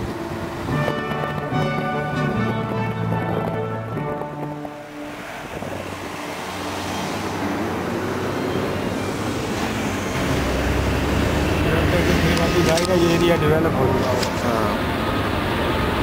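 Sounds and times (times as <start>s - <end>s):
background music: 0.0s - 8.1s
motorcycle engine and road noise: 0.0s - 16.0s
wind rushing over microphone: 0.0s - 16.0s.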